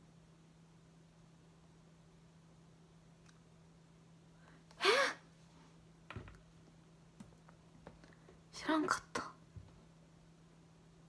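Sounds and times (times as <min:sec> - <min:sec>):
woman gasping: 0:04.8 - 0:05.3.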